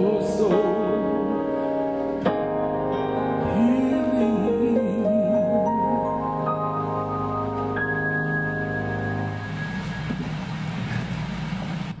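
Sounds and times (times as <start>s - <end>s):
held organ tone: 5.6s - 11.4s
low uneven rumble: 8.7s - 12.0s.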